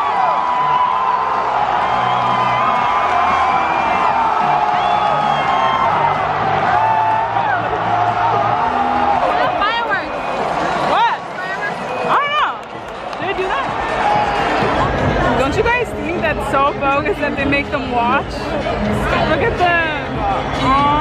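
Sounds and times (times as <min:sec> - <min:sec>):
rising whoops: 0:00.0 - 0:09.1
crowd cheering: 0:00.0 - 0:16.2.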